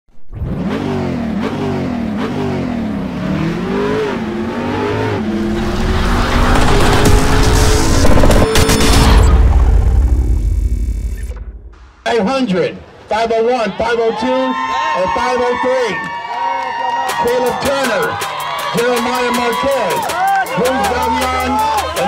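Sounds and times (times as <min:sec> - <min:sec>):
car engine revving and accelerating: 0:00.2 - 0:09.8.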